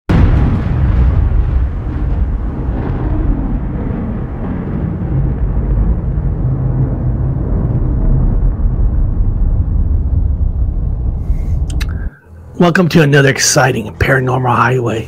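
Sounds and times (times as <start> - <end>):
deep low rumble: 0.1 - 12.9.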